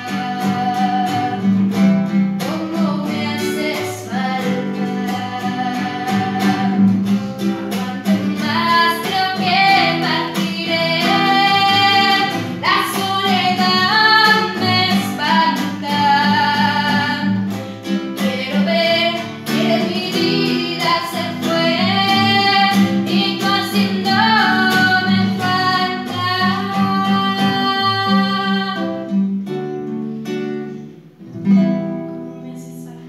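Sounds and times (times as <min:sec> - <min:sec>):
girl singing a ballad: 0:00.0 - 0:01.6, 0:02.4 - 0:17.5, 0:18.2 - 0:29.1
guitar: 0:00.0 - 0:33.0.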